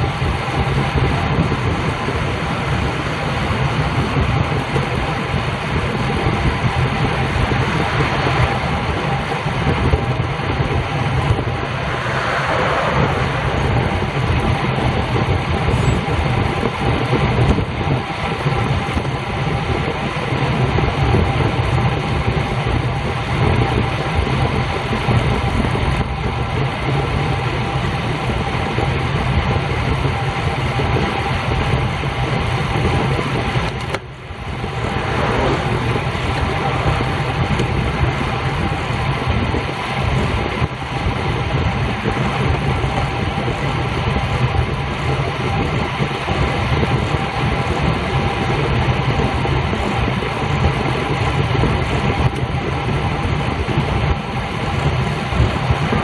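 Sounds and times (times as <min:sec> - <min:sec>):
tyre noise on asphalt: 0:00.0 - 0:56.0
wind rushing over microphone: 0:00.0 - 0:56.0.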